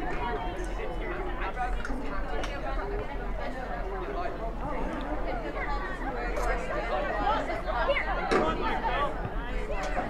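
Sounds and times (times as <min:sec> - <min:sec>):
people chattering and calling: 0:00.0 - 0:10.0.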